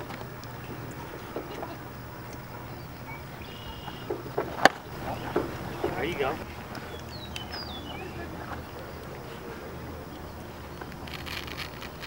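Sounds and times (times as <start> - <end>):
faint voices: 0.0 - 12.0
baseball striking with sharp smack: 4.1 - 6.4.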